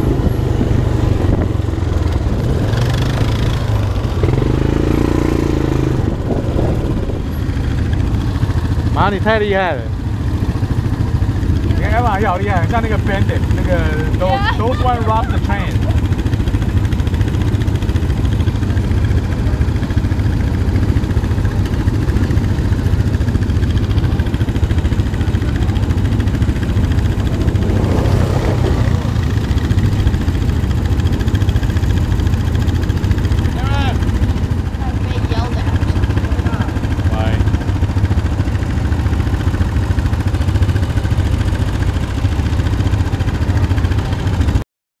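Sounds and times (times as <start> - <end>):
wind on microphone: 0.0 - 3.8, 5.9 - 7.4
atv engine running: 0.0 - 44.6
distant shouts: 14.1 - 16.1.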